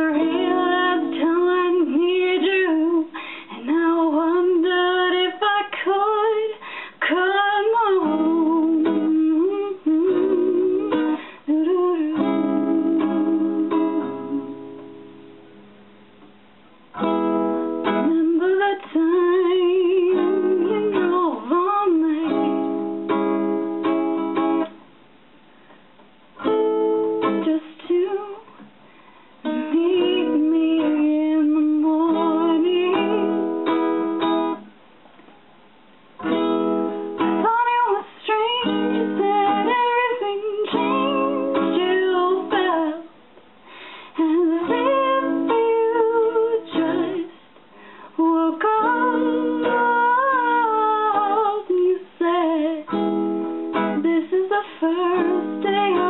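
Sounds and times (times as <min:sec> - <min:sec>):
woman singing soprano: 0:00.0 - 0:14.6, 0:17.9 - 0:22.8, 0:27.3 - 0:28.6, 0:29.4 - 0:33.6, 0:37.3 - 0:43.2, 0:44.1 - 0:47.4, 0:48.1 - 0:53.1, 0:53.7 - 0:56.0
acoustic guitar: 0:00.0 - 0:56.0.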